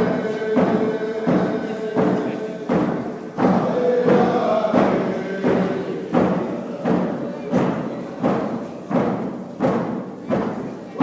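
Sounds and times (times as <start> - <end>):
group singing with held notes: 0.0 - 10.5
drum beaten in slow steady beat: 0.0 - 11.0.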